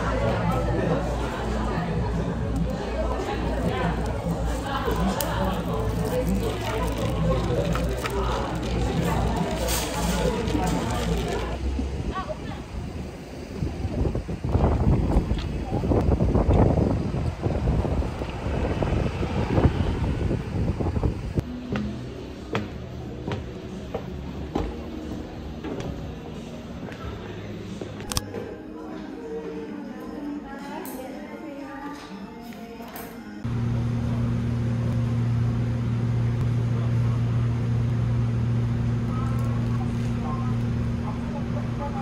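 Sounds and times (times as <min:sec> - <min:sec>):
wind buffeting microphone: 0:11.9 - 0:21.4.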